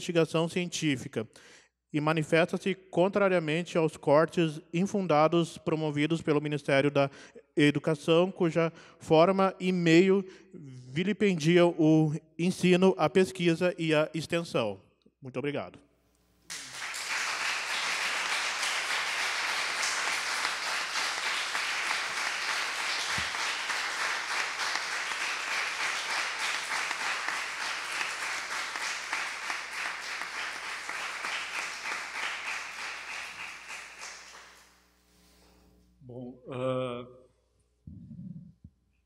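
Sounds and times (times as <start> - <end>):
audience applauding: 16.5 - 34.7.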